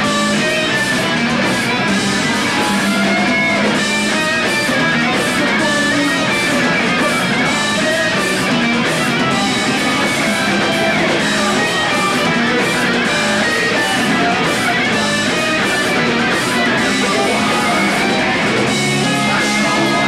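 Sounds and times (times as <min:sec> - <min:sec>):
drum kit: 0:00.0 - 0:20.0
electric guitars strumming: 0:00.0 - 0:20.0.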